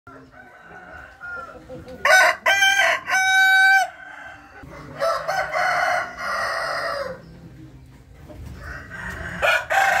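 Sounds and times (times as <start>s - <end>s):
rooster crowing: 0.1s - 7.2s, 8.6s - 10.0s.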